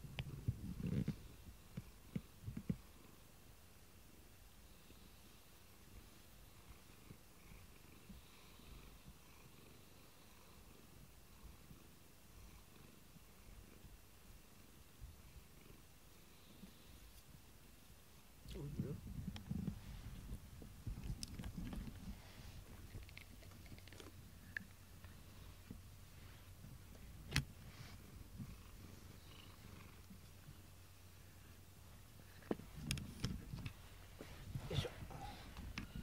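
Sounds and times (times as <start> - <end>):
cat purring: 0.0 - 3.2, 4.1 - 36.0.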